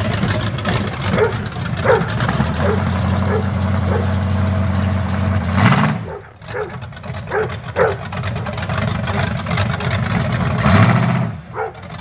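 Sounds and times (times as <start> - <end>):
pickup truck engine running: 0.0 - 12.0
dog barking: 1.1 - 4.2, 6.0 - 8.0, 11.5 - 11.8.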